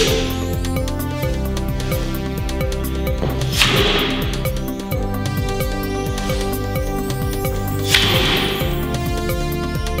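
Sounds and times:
electronic music with beat: 0:00.0 - 0:10.0.

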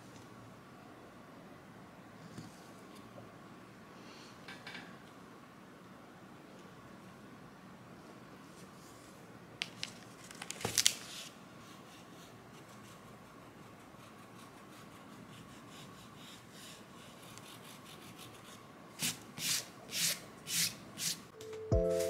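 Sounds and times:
soft music: 0:21.4 - 0:22.0.

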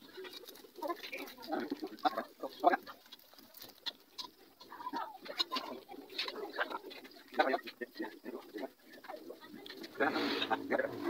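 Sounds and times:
clicks and rustles in metal bowl: 0:00.0 - 0:10.9
low indistinct voices talking: 0:00.0 - 0:11.0.

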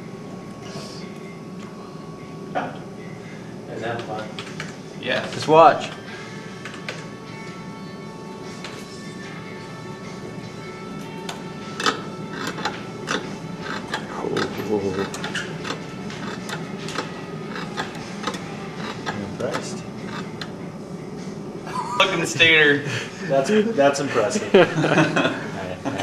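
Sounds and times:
winding machine whine: 0:00.0 - 0:26.0.

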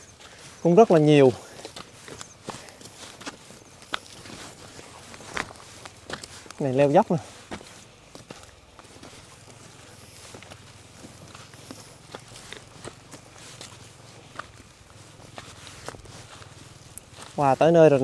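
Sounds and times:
footsteps on dirt trail: 0:00.0 - 0:18.0.

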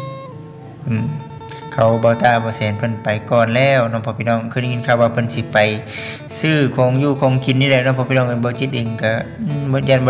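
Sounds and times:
plucked string melody: 0:00.0 - 0:10.0
man talking: 0:00.9 - 0:01.2, 0:01.8 - 0:10.0.

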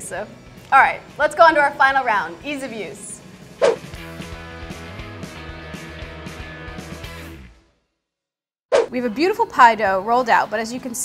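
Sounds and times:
background music with steady beat: 0:00.0 - 0:07.7
loud swish falling in pitch: 0:03.6 - 0:03.9, 0:08.7 - 0:08.9.

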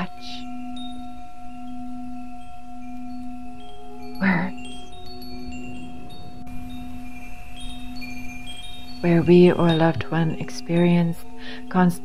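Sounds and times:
high chime notes: 0:00.0 - 0:12.0.

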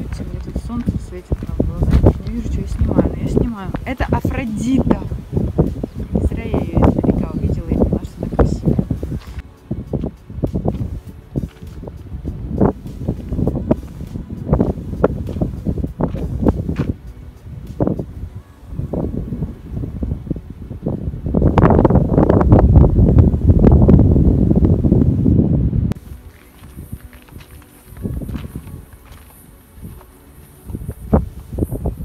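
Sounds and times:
wind buffeting microphone: 0:00.0 - 0:32.0.

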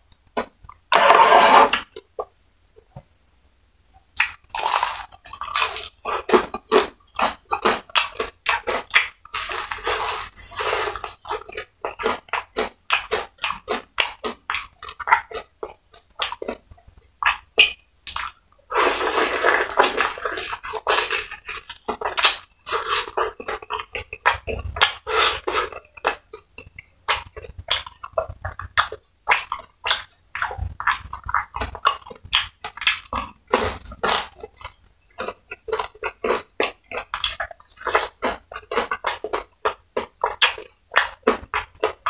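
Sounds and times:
crunching fried chicken: 0:04.2 - 0:42.0.

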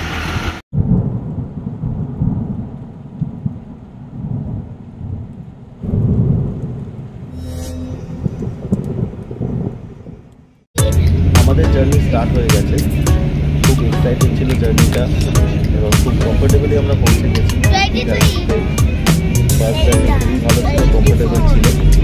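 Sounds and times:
rain: 0:00.2 - 0:07.4, 0:08.2 - 0:10.7
thunder rumbling: 0:00.7 - 0:22.0.

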